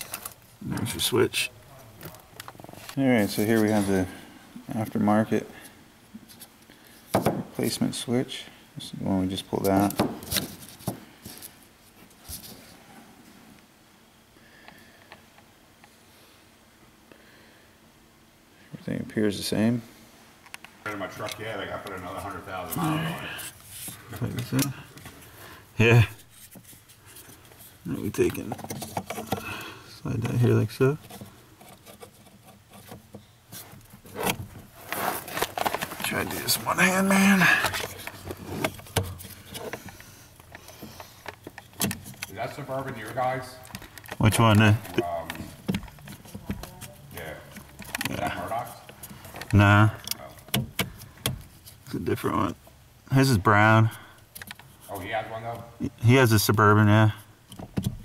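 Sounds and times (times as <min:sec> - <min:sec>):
faint rubbing of plastic: 0:26.2 - 0:29.4, 0:30.3 - 0:44.0.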